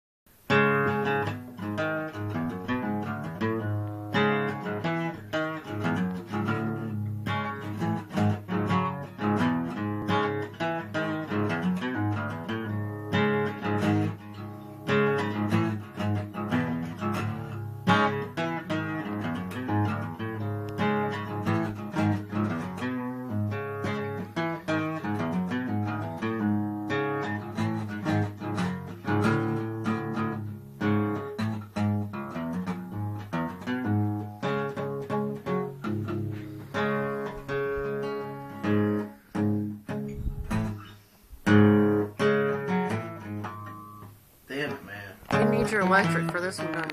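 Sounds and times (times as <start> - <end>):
acoustic guitar riff: 0.3 - 46.9.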